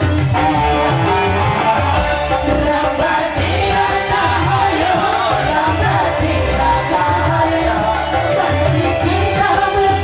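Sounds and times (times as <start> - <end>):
guitar: 0.0 - 10.0
live band music: 0.0 - 10.0
pulsing bass line: 0.0 - 10.0.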